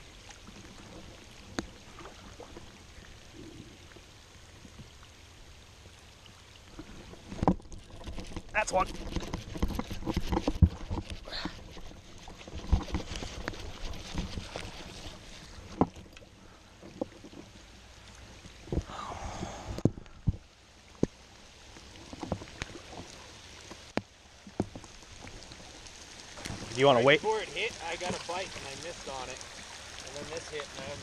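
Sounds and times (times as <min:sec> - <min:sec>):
rain falling on pond water: 0:00.0 - 0:31.0
water splashing: 0:00.0 - 0:31.0.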